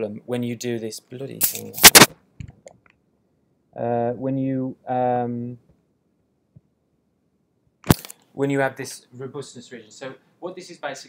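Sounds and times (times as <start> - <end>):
sharp loud click: 1.4 - 2.6, 7.8 - 8.2.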